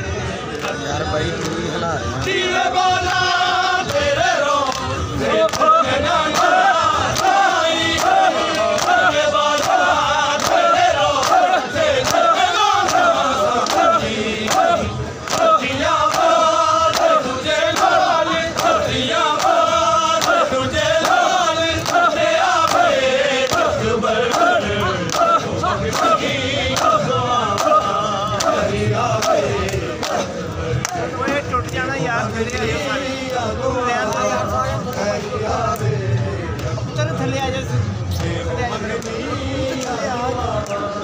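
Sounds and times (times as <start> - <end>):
crowd of men chanting: 0.0 - 41.0.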